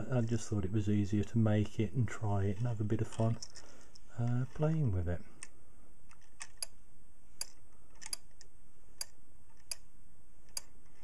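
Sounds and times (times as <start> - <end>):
pendulum toggle ticking: 7.4 - 9.9.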